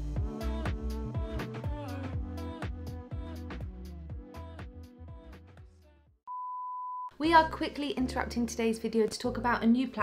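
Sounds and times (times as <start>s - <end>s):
background music: 0.0s - 5.9s, 7.1s - 10.0s
steady test-tone beep: 6.3s - 7.1s.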